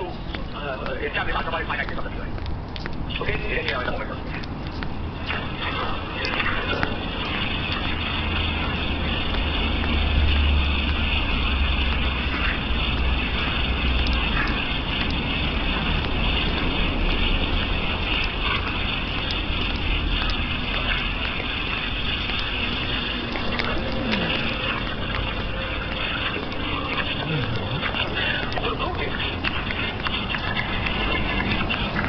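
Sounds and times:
street noise rumble and hiss: 0.0s - 32.0s.

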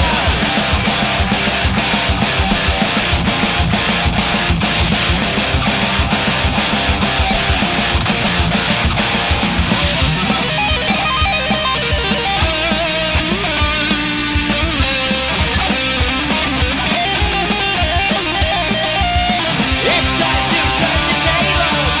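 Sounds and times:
distorted electric guitar: 0.0s - 22.0s
driving drums: 0.0s - 22.0s.

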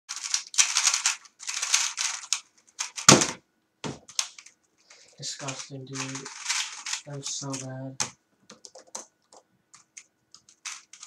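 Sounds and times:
puzzle cube clicking rattle: 0.1s - 3.2s, 4.1s - 11.0s
heavy thumps: 3.1s - 4.2s.

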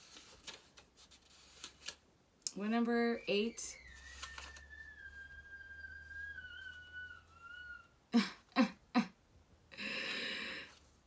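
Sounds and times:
thin whistling tone: 3.1s - 7.9s.

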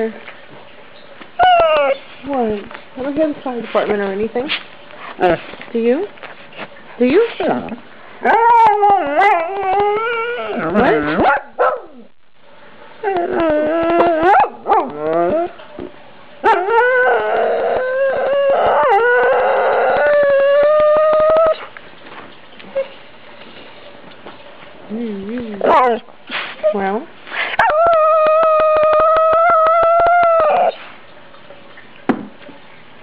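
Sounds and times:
dog howling: 1.4s - 2.0s, 8.2s - 11.0s, 13.0s - 15.6s, 16.4s - 21.7s, 27.6s - 30.9s.

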